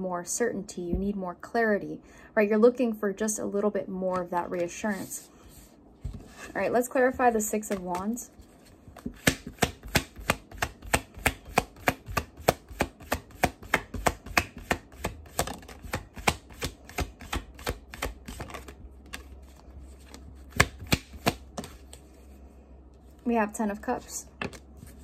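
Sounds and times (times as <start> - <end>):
cards being shuffled: 7.6 - 22.1.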